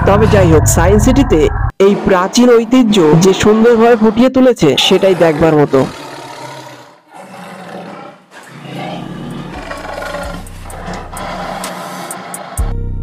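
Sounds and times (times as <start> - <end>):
dinosaur roars and growls: 0.0 - 12.8
dramatic low music: 9.7 - 13.0.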